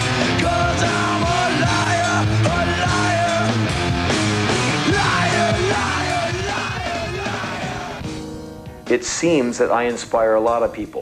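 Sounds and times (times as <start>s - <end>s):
person yelling lead vocal: 0.0s - 3.8s, 4.5s - 8.0s
rock band playing: 0.0s - 10.7s.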